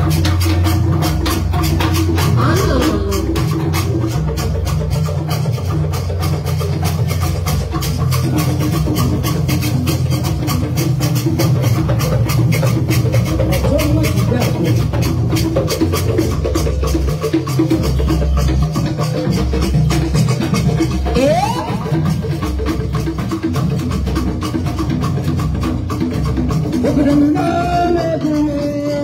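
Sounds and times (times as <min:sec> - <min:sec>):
deeper drums: 0:00.0 - 0:29.0.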